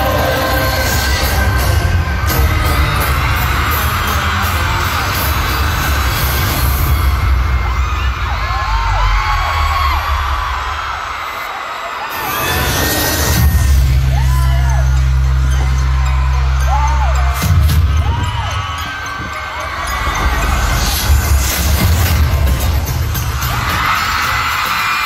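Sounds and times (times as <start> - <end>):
bass-heavy music over pa: 0.0 - 9.5, 12.6 - 25.0
crowd screaming and cheering: 0.0 - 25.0.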